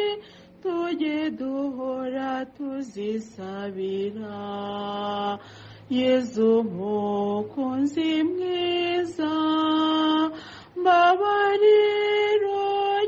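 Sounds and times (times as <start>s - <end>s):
woman singing a slow hymn: 0.0s - 13.0s.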